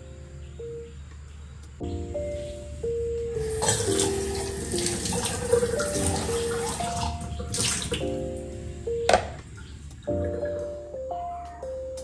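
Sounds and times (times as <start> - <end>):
soft background music: 0.0 - 12.0
tap running into sink: 3.6 - 8.0
water splashing on dish: 3.6 - 8.1.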